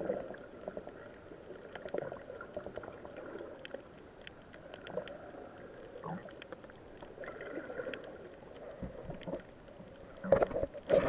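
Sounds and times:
water sloshing underwater: 0.0s - 11.0s.

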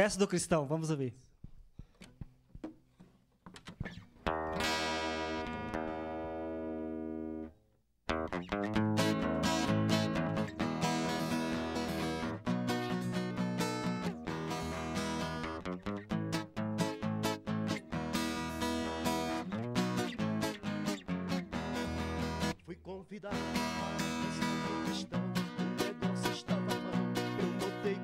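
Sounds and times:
acoustic guitar strumming: 3.5s - 7.5s, 8.1s - 22.6s, 23.2s - 28.0s.

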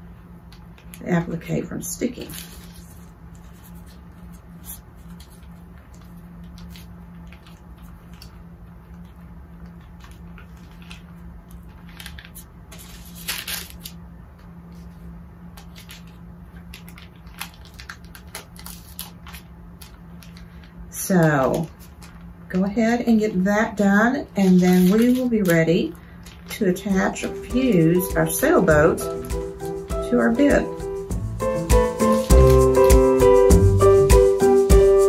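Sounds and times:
steady low hum: 0.0s - 35.0s
paper rustling: 2.1s - 22.3s, 24.3s - 33.3s.

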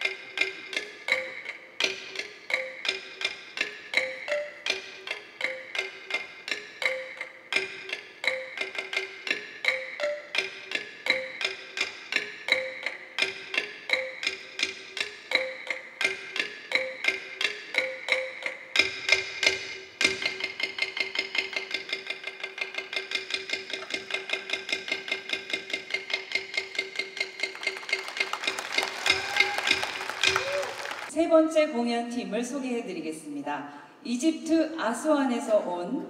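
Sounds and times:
struck bamboo and hand percussion: 0.0s - 31.1s.

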